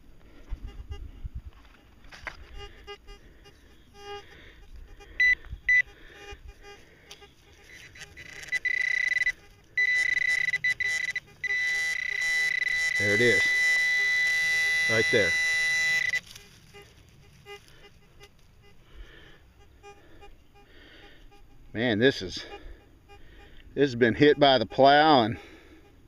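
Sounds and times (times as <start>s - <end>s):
metal detector beeping tone: 5.0s - 18.8s, 19.6s - 26.0s.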